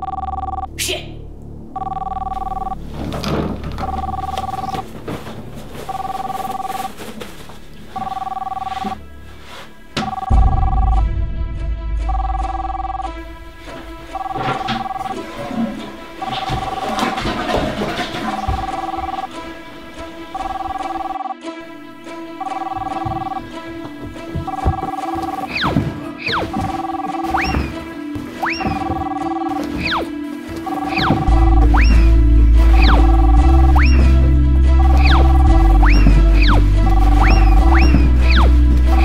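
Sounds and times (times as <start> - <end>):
two-tone electronic telephone ring: 0.0 - 0.7, 1.8 - 2.8, 3.8 - 4.8, 5.9 - 6.8, 8.0 - 9.0, 10.0 - 11.0, 14.1 - 15.5, 16.2 - 19.3, 20.3 - 21.4, 22.4 - 23.5
music with heavy bass: 31.0 - 39.0.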